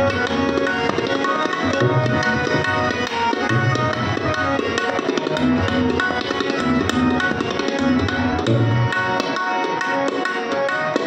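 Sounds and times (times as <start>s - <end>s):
harmonium sustained notes: 0.0s - 11.0s
tabla drumming: 0.0s - 11.0s.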